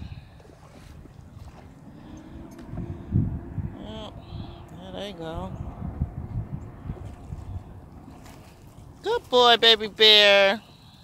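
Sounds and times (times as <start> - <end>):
wind rumble on microphone: 0.0 - 10.2.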